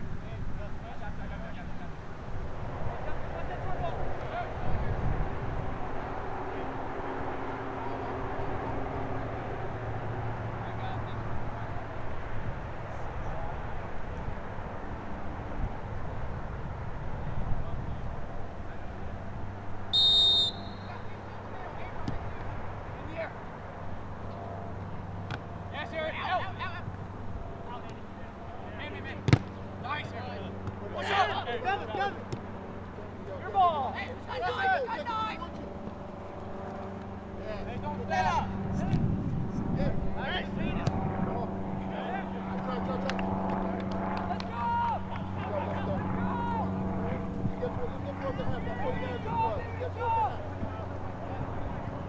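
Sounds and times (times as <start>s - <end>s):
low engine hum: 0.0s - 52.0s
referee's whistle blast: 19.9s - 21.1s
players shouting: 20.0s - 23.2s, 44.4s - 46.8s.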